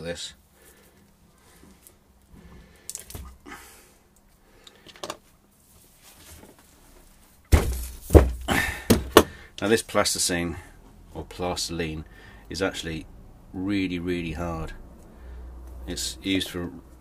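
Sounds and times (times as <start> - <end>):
heavy thunk on wooden workbench: 7.5 - 9.4.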